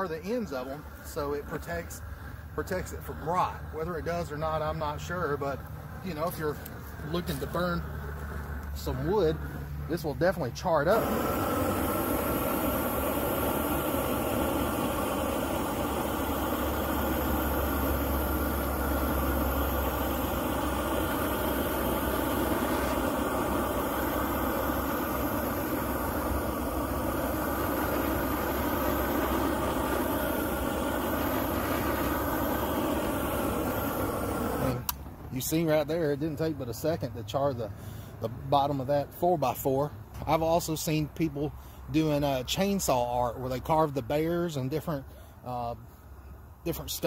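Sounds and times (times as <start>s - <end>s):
propane torch flame rushing: 0.0s - 38.8s.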